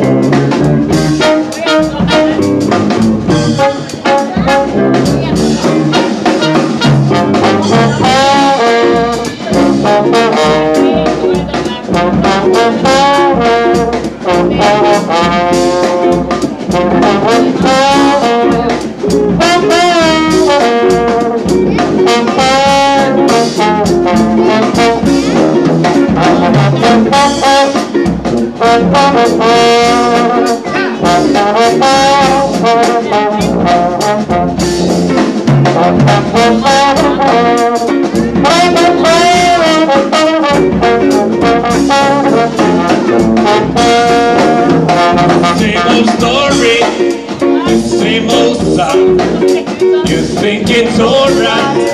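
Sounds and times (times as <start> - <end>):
steady beat: 0.0 - 51.9
trombone melody: 0.0 - 51.9
tuba bass: 0.0 - 51.9.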